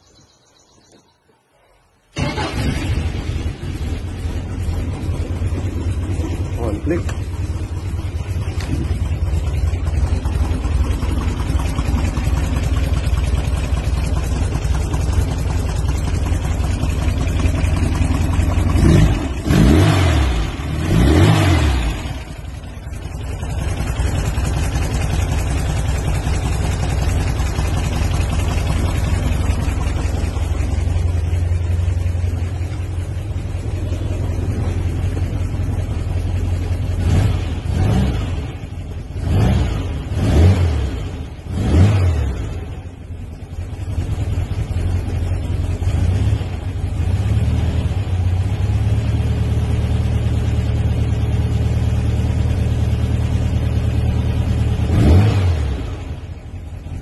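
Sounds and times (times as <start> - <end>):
car engine idling and revving: 2.1 - 57.0.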